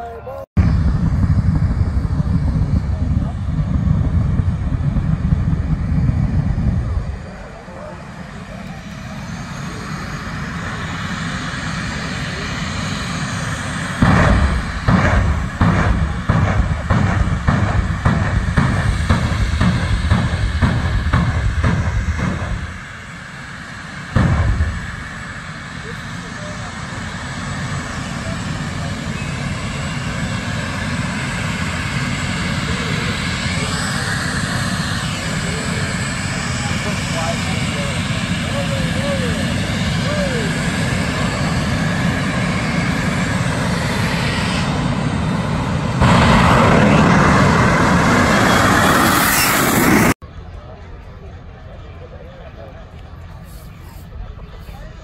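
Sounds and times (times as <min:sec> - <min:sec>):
loud drag racing engines: 0:00.0 - 0:55.0
sharp bang: 0:13.1 - 0:25.8, 0:41.9 - 0:50.2.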